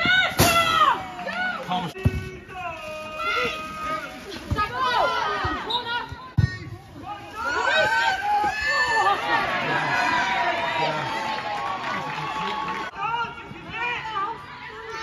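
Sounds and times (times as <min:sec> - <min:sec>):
people shouting and calling: 0:00.0 - 0:11.4.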